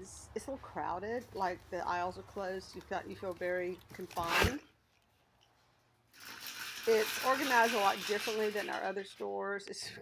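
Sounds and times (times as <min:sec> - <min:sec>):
woman speaking: 0:00.0 - 0:04.7, 0:06.8 - 0:10.0
shopping cart rattling on concrete: 0:06.1 - 0:09.5.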